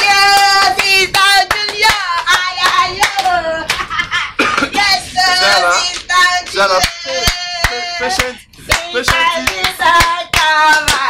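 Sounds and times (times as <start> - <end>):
group singing: 0.0 - 3.7, 4.8 - 11.0
hand claps: 0.0 - 3.9, 6.4 - 11.0.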